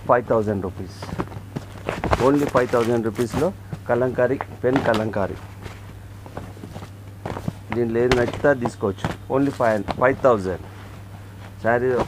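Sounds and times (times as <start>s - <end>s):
person speaking: 0.0s - 1.3s, 2.1s - 5.7s, 7.6s - 10.8s, 11.6s - 12.0s
steady low hum: 0.0s - 12.0s
cardboard boxes rustling: 0.5s - 12.0s.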